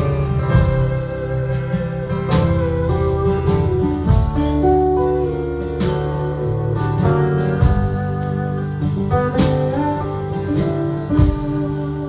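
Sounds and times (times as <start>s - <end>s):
acoustic guitars strumming: 0.0s - 12.0s
gliding lead melody: 0.0s - 12.0s.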